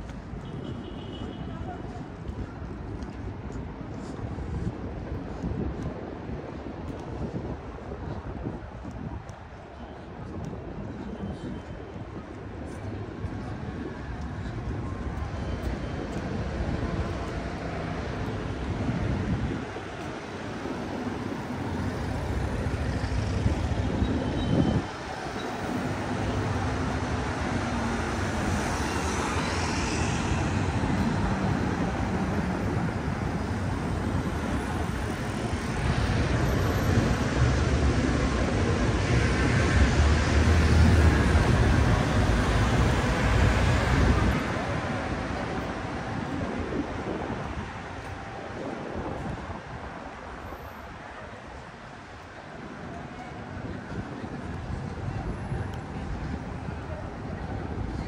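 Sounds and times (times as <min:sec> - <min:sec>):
cars passing on road: 0:00.0 - 0:58.0.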